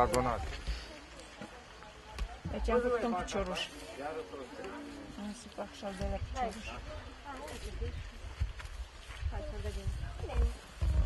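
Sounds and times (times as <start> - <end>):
voices talking in background: 0.0 - 11.0.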